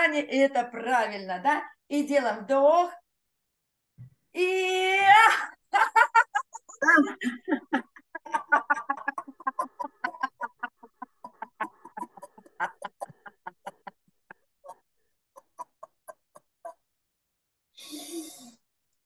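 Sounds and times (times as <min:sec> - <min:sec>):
woman laughing loudly: 0:05.1 - 0:16.8.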